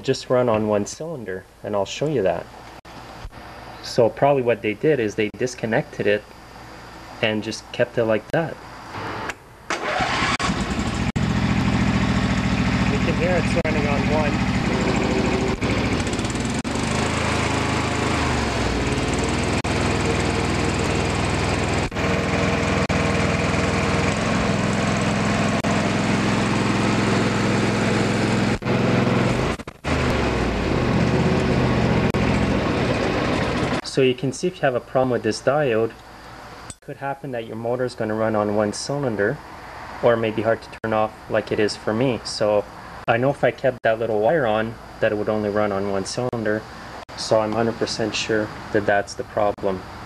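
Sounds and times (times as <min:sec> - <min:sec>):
lawn tractor engine running: 0:09.0 - 0:33.8.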